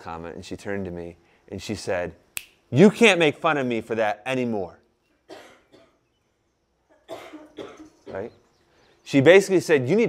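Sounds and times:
person clearing throat: 5.3s - 6.0s, 6.9s - 8.4s
person coughing: 5.3s - 6.0s, 6.9s - 8.3s.

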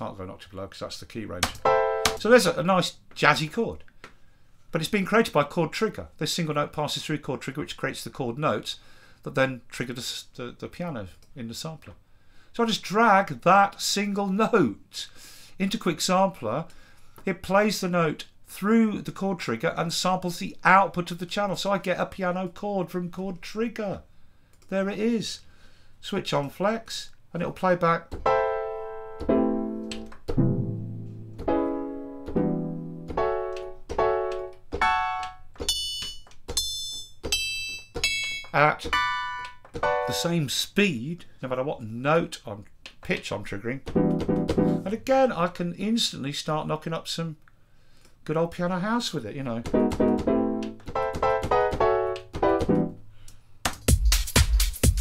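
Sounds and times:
sampled piano chords: 1.6s - 2.3s, 28.1s - 35.8s, 38.0s - 40.3s, 43.9s - 44.9s, 49.7s - 53.1s
house drum beat with heavy kick: 53.8s - 55.0s.

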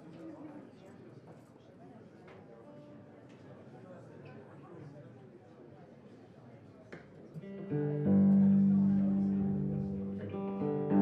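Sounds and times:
electric guitar playing: 7.4s - 11.0s.

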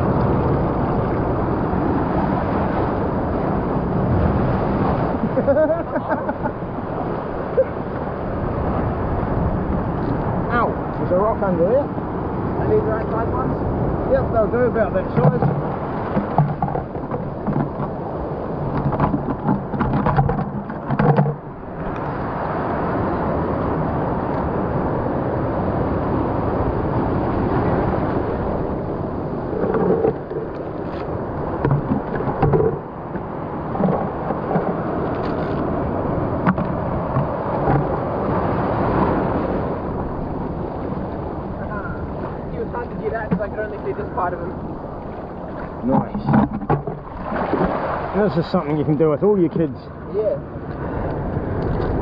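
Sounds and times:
sea surf washing around rocks: 0.0s - 52.0s.

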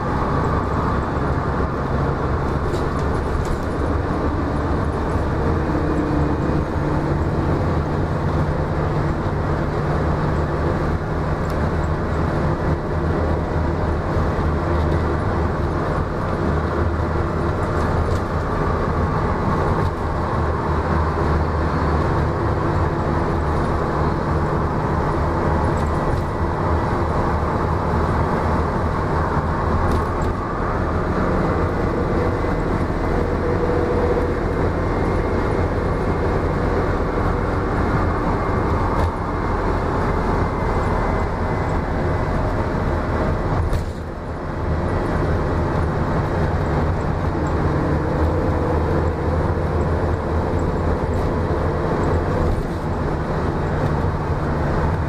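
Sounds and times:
bus engine drone: 0.0s - 55.0s
road and tyre noise: 0.0s - 55.0s.

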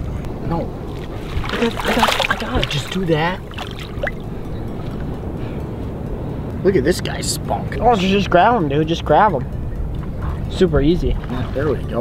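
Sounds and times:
surf rushing: 0.4s - 5.1s
shallow water washing around legs: 0.8s - 5.1s.

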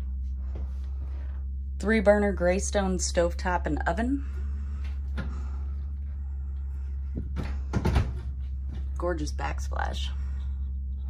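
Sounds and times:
steady low hum: 0.0s - 11.0s
clatter of knocks: 7.1s - 8.9s.

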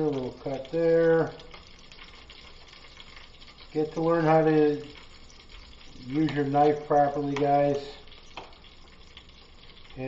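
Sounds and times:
steak sizzling in frying pan: 0.0s - 10.0s.

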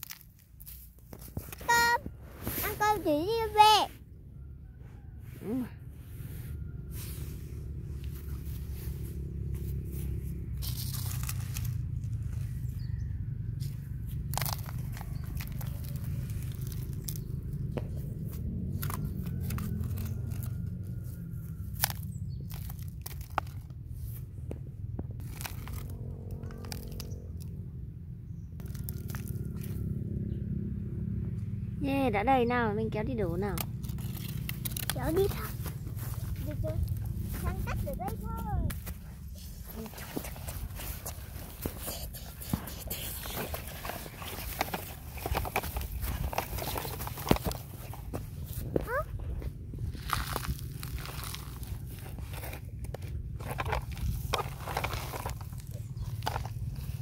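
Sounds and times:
steady low rumble: 5.8s - 57.0s
toy shovel scraping gravel: 8.4s - 11.8s, 39.3s - 48.0s, 49.8s - 57.0s.

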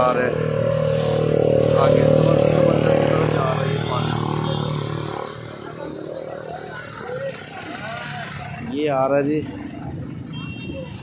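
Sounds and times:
vehicle engine passing: 0.0s - 10.2s
faint voices of passers-by: 0.0s - 11.0s
low traffic rumble: 0.0s - 11.0s.

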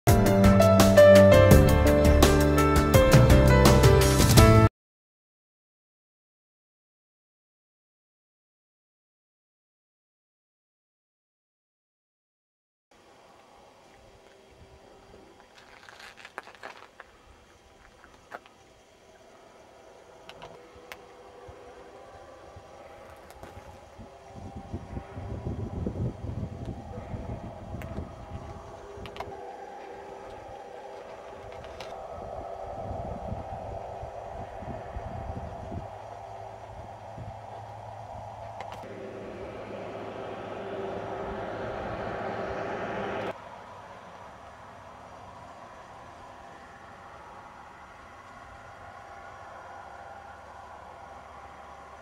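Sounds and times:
vehicle engine and tyre noise: 13.0s - 52.0s
wind buffeting microphone: 20.3s - 43.4s.

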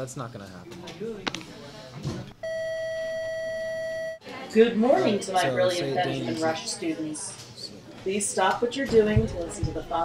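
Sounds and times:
electronic beep over loudspeaker: 2.4s - 4.2s.

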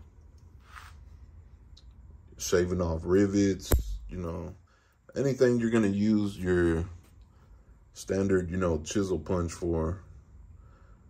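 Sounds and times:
low room hum: 0.0s - 11.0s
soft scrape: 0.6s - 1.3s.

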